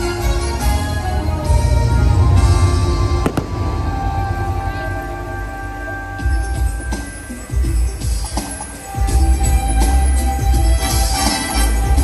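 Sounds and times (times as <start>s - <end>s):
holiday music: 0.0s - 12.0s
fireworks booming: 0.8s - 6.9s
sharp firework cracks: 3.2s - 5.0s.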